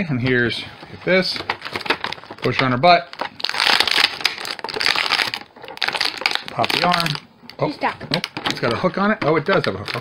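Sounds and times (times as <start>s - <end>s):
plastic packaging crinkling: 0.3s - 10.0s.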